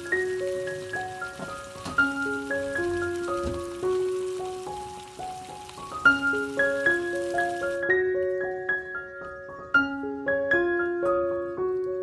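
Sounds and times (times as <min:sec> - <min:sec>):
fish frying in oil: 0:00.0 - 0:07.9.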